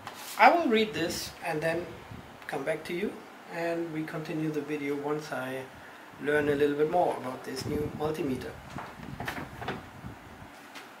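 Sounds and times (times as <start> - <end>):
paper rustling: 0.0 - 0.5.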